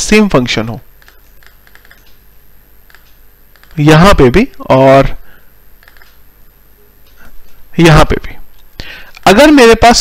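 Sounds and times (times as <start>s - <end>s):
low steady hum: 0.0s - 10.0s
soft computer clicks: 1.0s - 2.2s, 2.8s - 3.8s, 5.8s - 6.2s.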